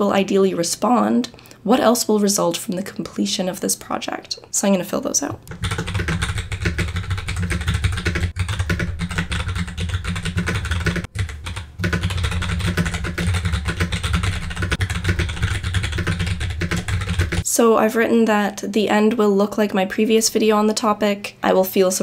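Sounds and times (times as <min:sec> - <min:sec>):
fast typing on keyboard: 0:05.4 - 0:17.5.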